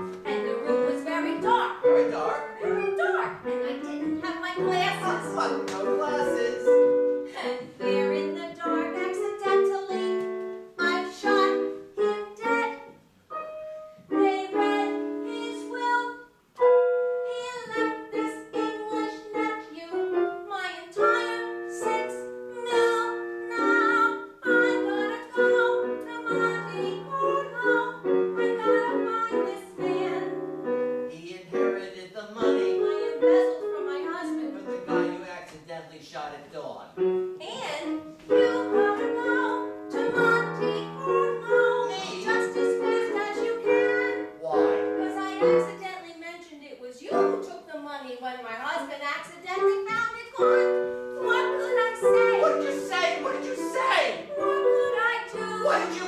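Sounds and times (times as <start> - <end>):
woman singing: 0.0 - 12.9, 14.1 - 16.3, 17.2 - 30.4, 32.1 - 35.2, 37.4 - 56.0
instrumental accompaniment: 0.0 - 35.6, 37.0 - 45.8, 49.5 - 56.0
show tune singing: 0.2 - 10.2, 37.8 - 45.8, 49.6 - 56.0.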